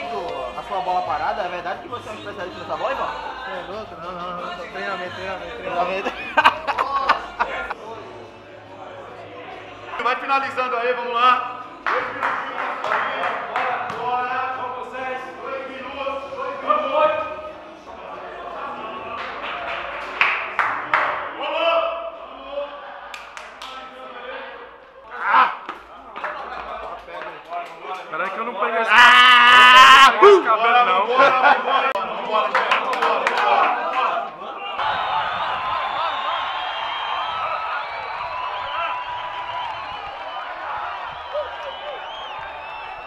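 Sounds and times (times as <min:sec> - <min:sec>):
man's wavering shout: 0:28.9 - 0:30.5.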